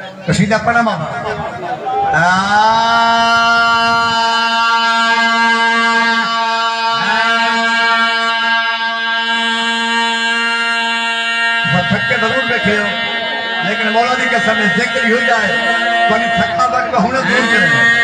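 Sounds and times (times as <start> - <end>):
man speaking: 0.0 - 2.5, 11.6 - 18.0
man chanting long note: 2.1 - 18.0.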